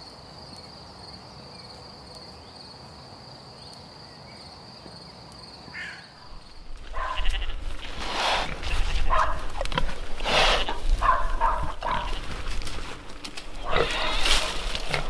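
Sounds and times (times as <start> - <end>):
pigs squealing and grunting: 6.9 - 12.2, 13.5 - 15.0.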